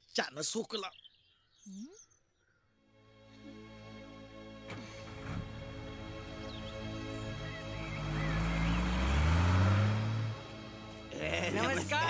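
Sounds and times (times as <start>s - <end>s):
diesel truck engine revving: 4.6s - 12.0s.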